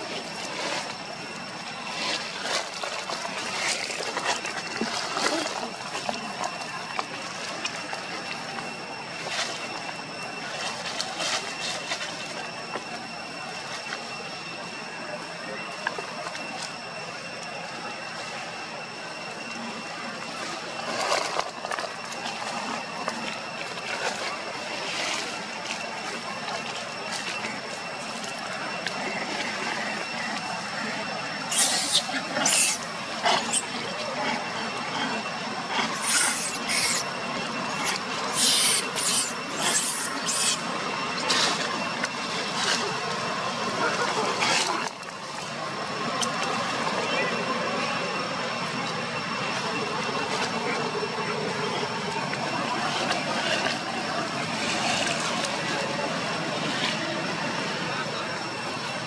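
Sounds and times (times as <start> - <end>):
high-pitched insect drone: 0.0 - 59.0.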